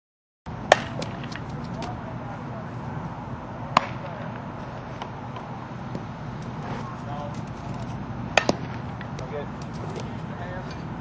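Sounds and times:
softball impact cracks: 0:00.7 - 0:02.0, 0:03.7 - 0:04.4, 0:08.3 - 0:10.2.

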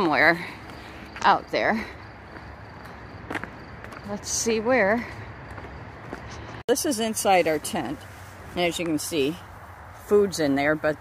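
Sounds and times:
footsteps on gravel: 0:00.0 - 0:10.1.

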